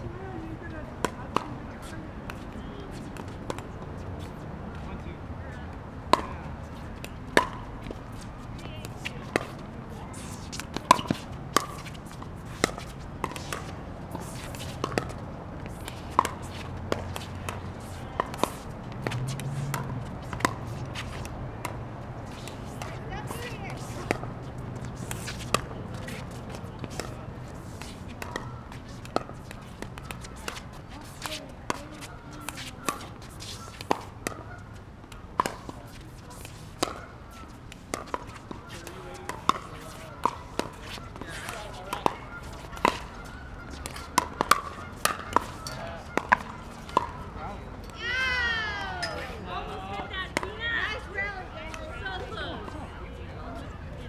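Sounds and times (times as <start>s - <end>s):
paddles hitting plastic ball: 10.4s - 36.1s, 36.7s - 47.2s.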